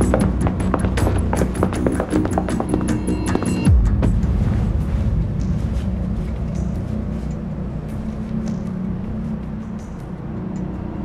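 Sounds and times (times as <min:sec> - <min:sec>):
low steady rumble: 0:00.0 - 0:11.0
tense background music: 0:00.0 - 0:11.0
deep bass sweep falling: 0:03.7 - 0:07.9.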